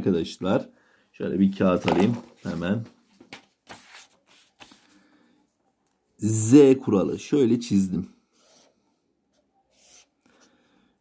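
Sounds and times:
paper rustling: 1.6s - 5.1s.

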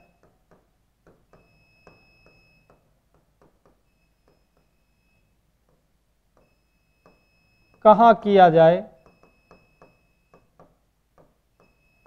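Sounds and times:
pen tapping on whiteboard: 0.0s - 4.7s, 9.0s - 11.8s
faint high steady tone: 1.3s - 2.8s, 3.8s - 5.5s, 6.3s - 10.6s, 11.5s - 12.0s.

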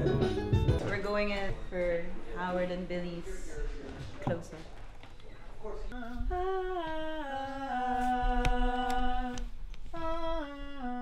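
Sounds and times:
person singing long notes: 6.0s - 11.0s.

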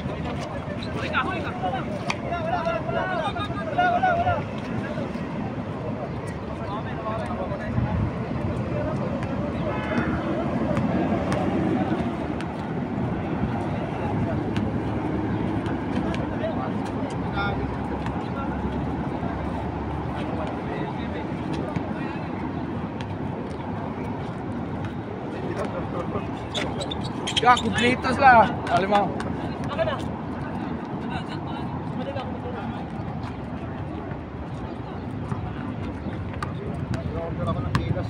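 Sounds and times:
road traffic noise: 0.0s - 38.0s
players calling out: 25.4s - 32.6s.

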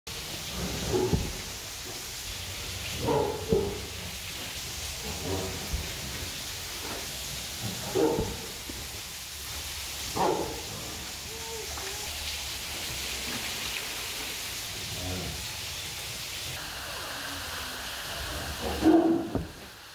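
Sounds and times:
background hiss: 0.1s - 19.9s
tiger snarling and growling: 4.9s - 6.5s.

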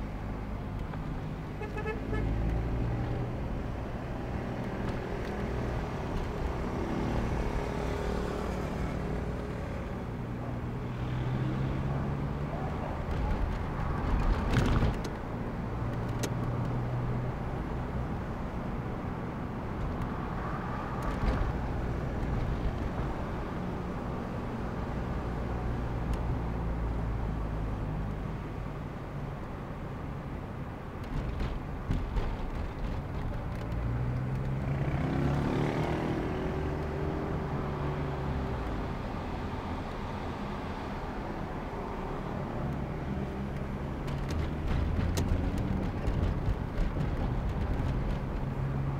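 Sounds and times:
road noise: 0.0s - 48.9s
street traffic rumble: 0.0s - 48.9s
vehicle engine drone: 0.0s - 48.9s.

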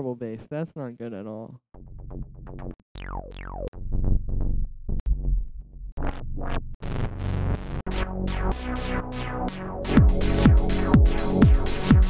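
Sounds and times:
synthesizer bass line: 1.8s - 12.0s.

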